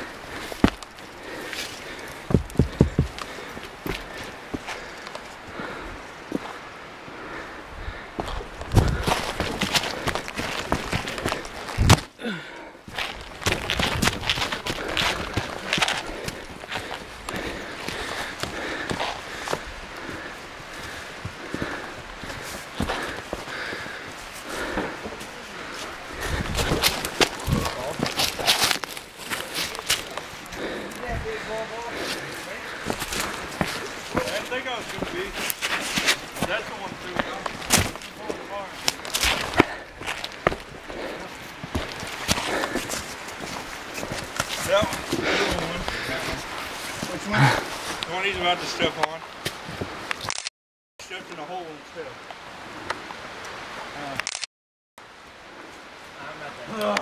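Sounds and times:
footsteps on rock and leaves: 0.0s - 5.4s, 8.2s - 12.1s, 12.9s - 19.7s, 20.8s - 48.0s.

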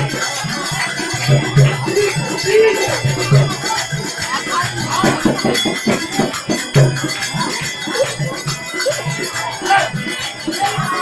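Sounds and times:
jingling percussion: 0.0s - 11.0s
steady drum beat: 0.0s - 11.0s.

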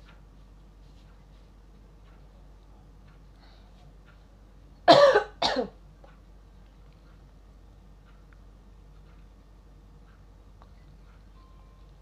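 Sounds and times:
person coughing: 4.9s - 5.8s.

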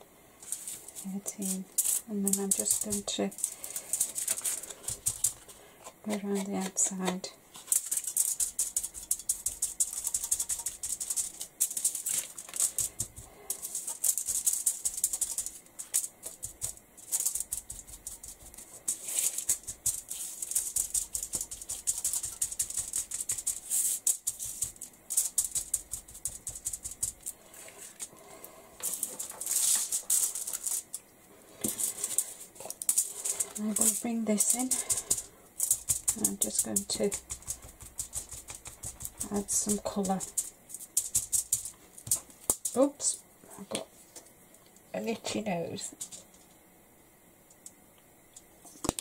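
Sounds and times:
sponge tapping through stencil: 1.9s - 5.5s, 16.2s - 27.3s, 33.4s - 42.7s.

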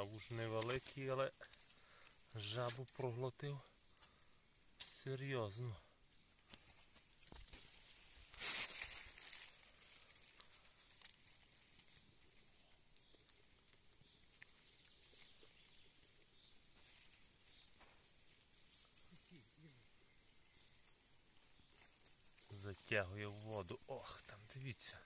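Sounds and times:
dry leaves rustling: 0.0s - 5.2s, 6.2s - 25.0s.

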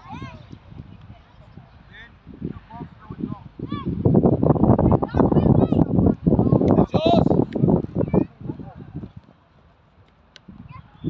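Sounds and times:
loud voices: 5.0s - 8.9s.

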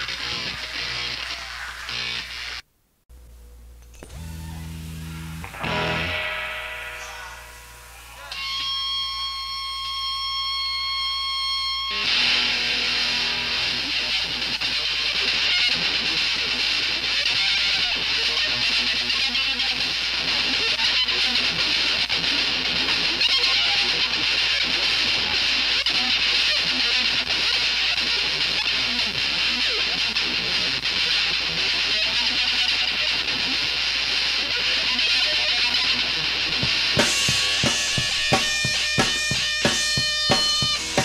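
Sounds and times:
distorted electric guitar: 0.0s - 2.6s, 3.4s - 41.0s
punk rock band: 4.0s - 9.0s, 11.3s - 41.0s
steady drum beat: 36.6s - 41.0s.

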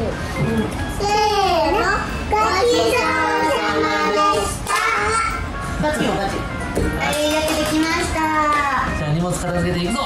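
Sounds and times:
young child singing: 1.0s - 5.4s.

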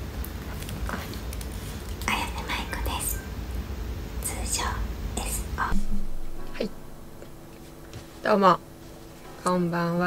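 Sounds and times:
low steady hum: 0.0s - 10.0s
woman whispering: 2.0s - 3.3s, 4.2s - 5.9s.

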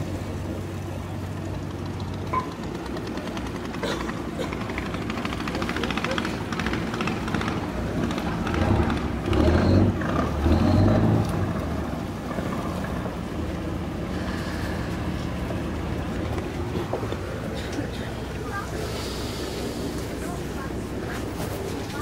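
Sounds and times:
boat engine running: 0.0s - 22.0s
people's voices: 2.6s - 9.5s, 14.1s - 22.0s.

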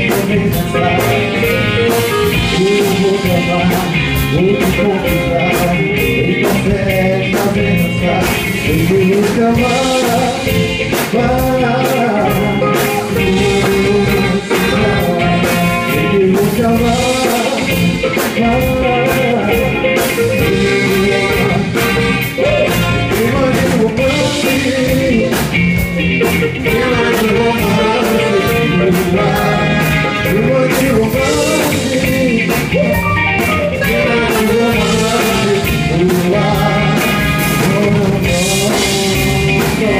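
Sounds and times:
drum kit with cymbals: 0.0s - 39.9s
electric guitar: 0.0s - 39.9s
man singing: 0.0s - 39.9s
trumpet: 20.4s - 23.6s, 26.7s - 30.8s, 32.9s - 35.6s.

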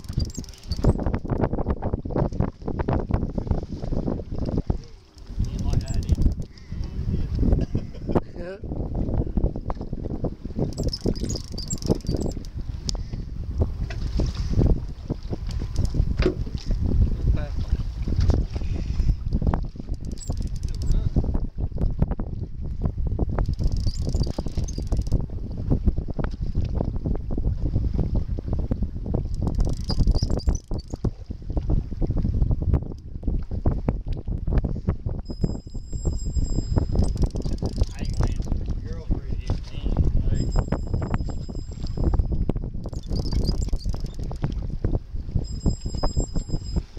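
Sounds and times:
boat and water noise: 0.0s - 46.9s
wind buffeting microphone: 0.0s - 46.9s.

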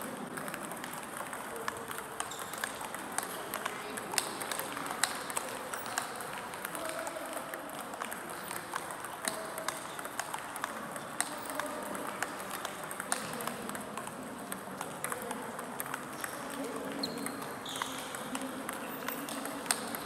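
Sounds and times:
table tennis balls clicking: 0.0s - 20.0s.

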